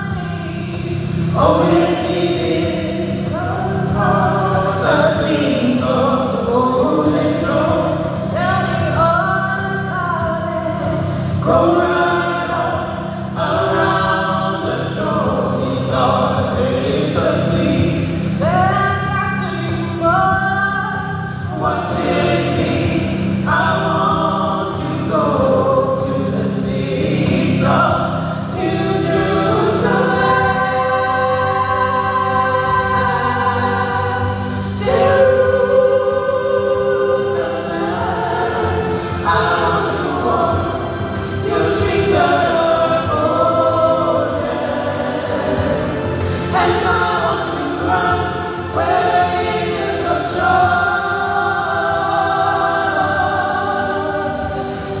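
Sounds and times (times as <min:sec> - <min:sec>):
group singing gospel in harmony: 0:00.0 - 0:55.0.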